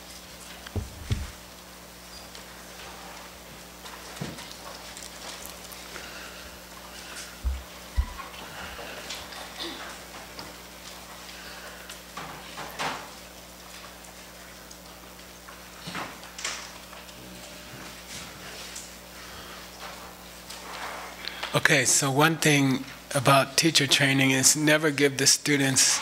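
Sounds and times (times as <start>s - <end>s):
faint steady hum: 0.0s - 26.0s
dull thumps: 0.7s - 1.4s, 7.4s - 8.3s
small knocks and taps: 7.4s - 8.3s.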